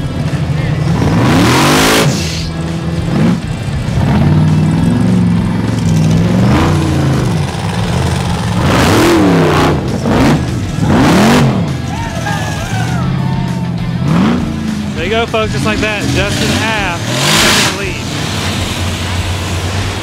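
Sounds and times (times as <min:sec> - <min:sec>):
buggy engine revving: 0:00.0 - 0:20.0.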